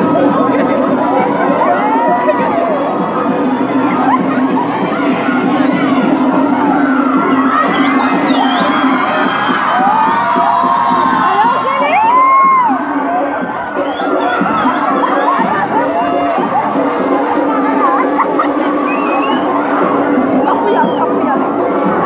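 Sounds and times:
children shouting and cheering: 0.0 - 22.0.

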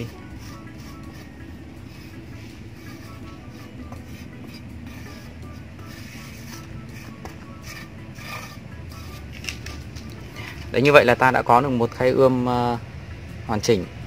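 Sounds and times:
metal scraper scraping soil: 0.0 - 9.7
machine humming: 0.0 - 10.7.

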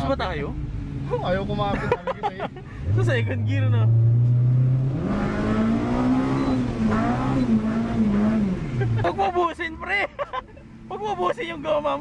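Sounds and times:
car engine revving: 0.0 - 9.9.

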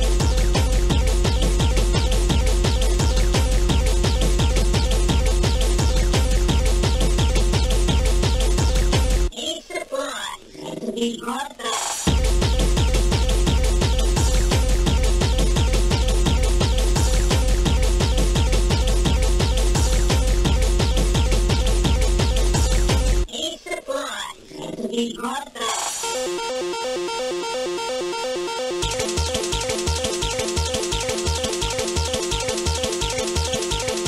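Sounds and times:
fast repeating synth riff: 0.0 - 9.3, 12.1 - 23.3, 26.0 - 34.0
pounding four-on-the-floor beat: 0.0 - 9.3, 12.1 - 23.3, 28.7 - 34.0
voice-like sample: 2.7 - 31.7.

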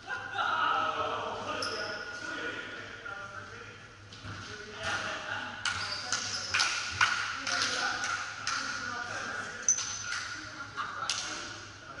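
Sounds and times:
ball slaps echoing in sports hall: 4.2 - 11.7.

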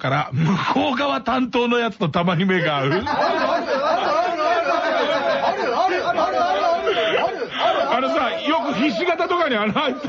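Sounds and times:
many voices chanting: 3.3 - 8.0.

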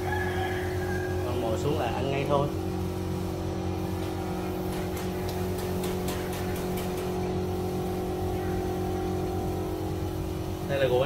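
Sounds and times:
low mechanical motor hum: 0.0 - 11.0.

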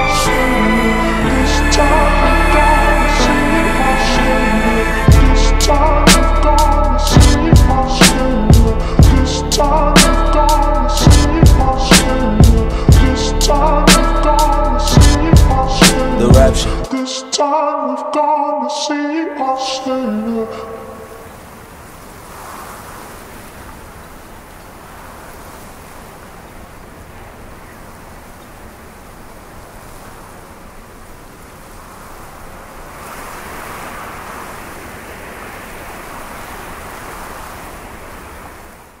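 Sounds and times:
steady rushing ambience: 0.0 - 16.9, 19.8 - 39.0.

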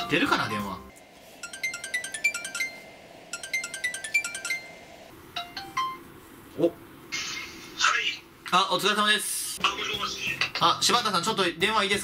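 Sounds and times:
phone ringing tone: 1.3 - 6.0.

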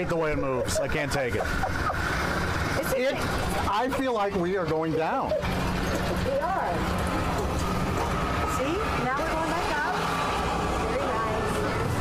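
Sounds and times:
fairground background noise: 0.0 - 12.0.

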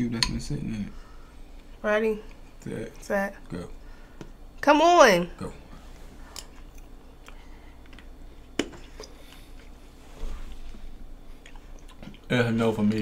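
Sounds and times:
chewing and mouth sounds: 6.3 - 9.8, 10.5 - 12.3.

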